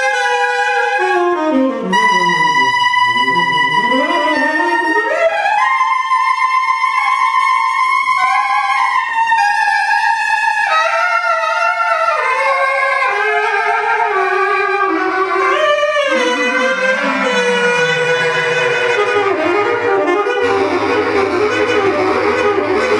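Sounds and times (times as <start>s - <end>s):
saxophone playing jazz melody: 0.0s - 5.6s, 12.4s - 22.9s.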